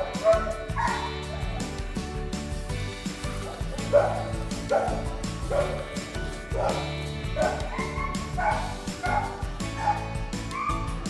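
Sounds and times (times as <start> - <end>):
background music with steady beat: 0.0 - 11.0
dog barking: 3.5 - 5.8, 6.6 - 10.8.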